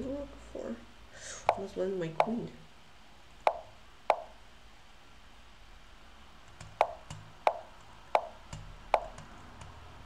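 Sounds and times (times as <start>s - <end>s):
wooden knock sound effect: 3.5s - 4.3s, 6.8s - 8.4s.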